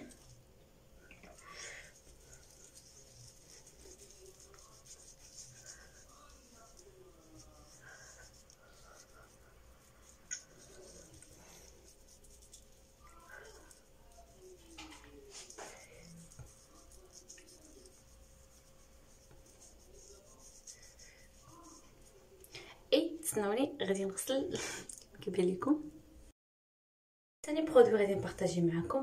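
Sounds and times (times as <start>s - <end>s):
low steady hum: 0.0s - 26.3s
sponge rubbing on skin: 1.2s - 22.3s.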